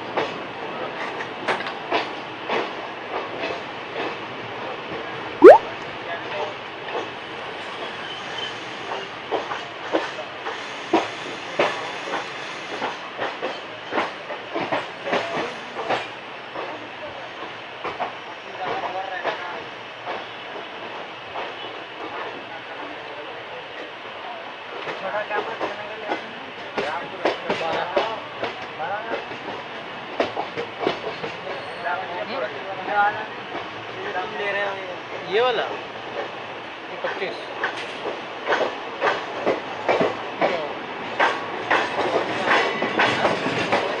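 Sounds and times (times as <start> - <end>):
train wheels clattering over joints: 37.0 - 44.0.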